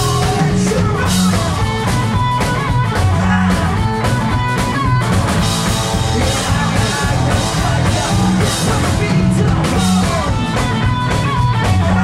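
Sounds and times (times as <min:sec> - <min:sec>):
electric guitar: 0:00.0 - 0:12.0
pounding drum kit: 0:00.0 - 0:12.0.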